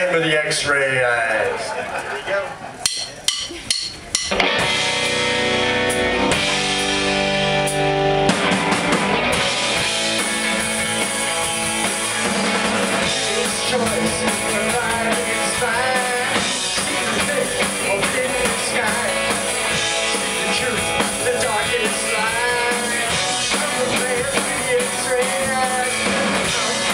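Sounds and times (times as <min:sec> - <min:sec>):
rock band playing: 0:02.8 - 0:26.9
electric guitar chords: 0:04.3 - 0:26.9.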